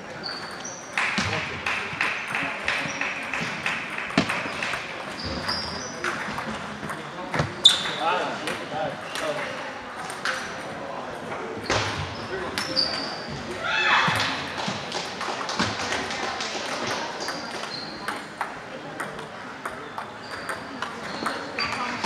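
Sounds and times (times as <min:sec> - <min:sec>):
background chatter: 0:00.0 - 0:22.0
table tennis balls clicking: 0:00.2 - 0:07.5, 0:14.2 - 0:22.0
short high squeaks: 0:07.6 - 0:08.0.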